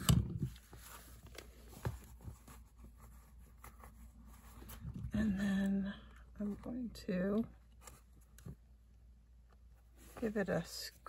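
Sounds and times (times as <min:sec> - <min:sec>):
faint fabric and paper rustling: 0:00.0 - 0:08.8, 0:09.6 - 0:11.0.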